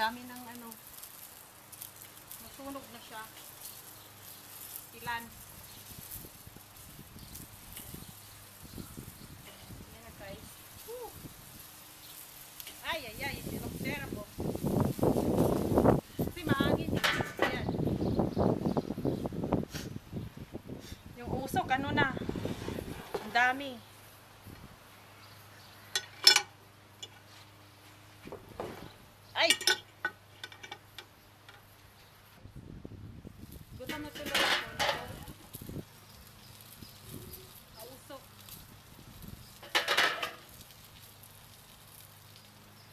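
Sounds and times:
faint steady hiss: 0:00.0 - 0:42.9
wind buffeting microphone: 0:05.0 - 0:11.7, 0:12.9 - 0:23.6, 0:32.4 - 0:39.6
metal tongs clinking: 0:25.9 - 0:27.2, 0:29.4 - 0:31.1.

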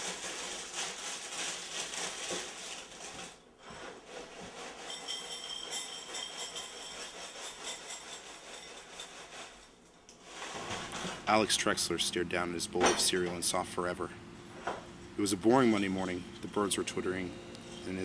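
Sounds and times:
cereal rattling out of box: 0:00.0 - 0:03.4
plastic bag crinkling: 0:00.0 - 0:03.4.

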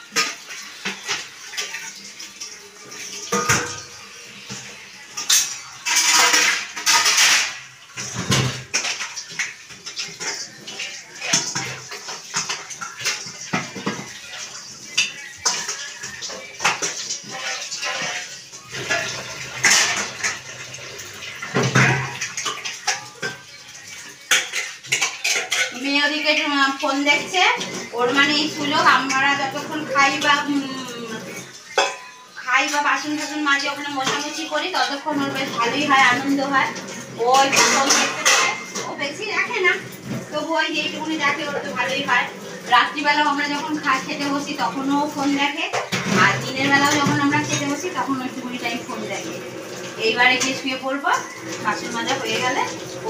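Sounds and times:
running water splashing: 0:00.0 - 0:53.0
steel utensils clattering in sink: 0:00.0 - 0:53.0.

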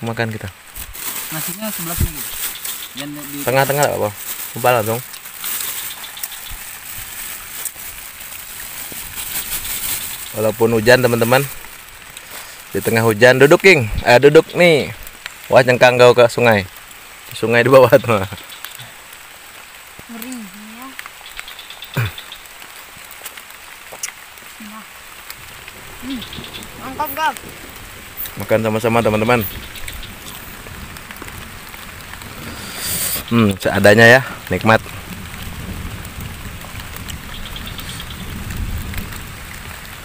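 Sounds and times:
rain falling on leaves: 0:00.0 - 0:40.0.

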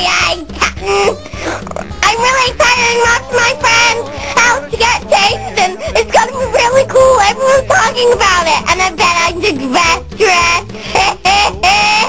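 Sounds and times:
backing track with low beat: 0:00.0 - 0:12.0
high voice singing: 0:00.0 - 0:12.0.

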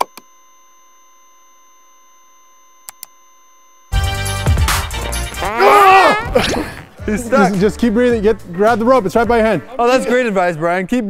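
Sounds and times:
electronic dial tone: 0:00.0 - 0:04.1
soft clicks: 0:02.8 - 0:03.2.

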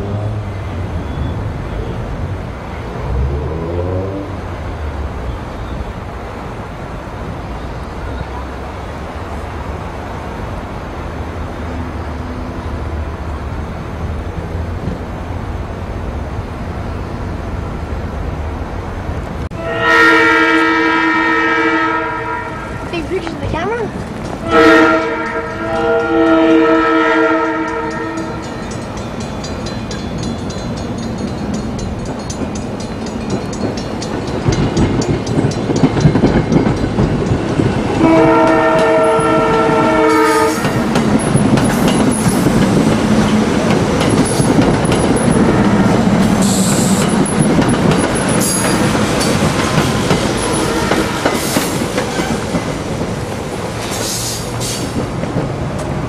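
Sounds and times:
train rumble: 0:00.0 - 0:56.0
train horn: 0:19.5 - 0:22.9, 0:24.4 - 0:28.5, 0:38.0 - 0:40.8, 0:45.3 - 0:47.0, 0:50.4 - 0:52.6
wheels clattering on rails: 0:22.7 - 0:56.0.

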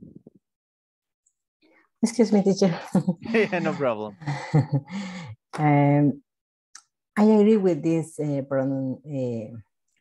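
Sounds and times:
faint breath: 0:04.9 - 0:05.4.

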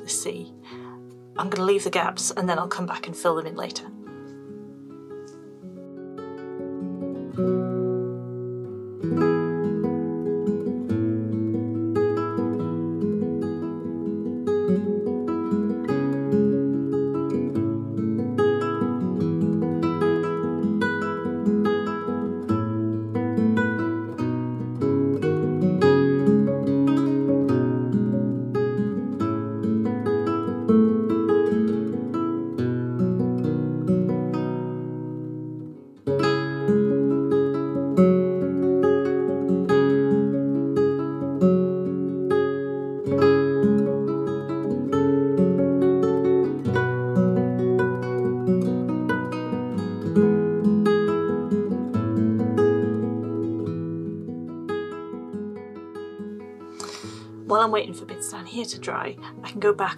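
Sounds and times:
fingerpicked acoustic guitar: 0:00.0 - 0:59.9.

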